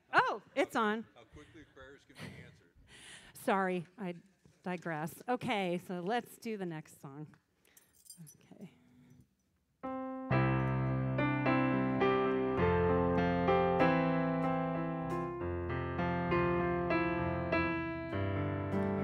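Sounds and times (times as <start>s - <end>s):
electronic keyboard piano chords: 9.8s - 19.0s.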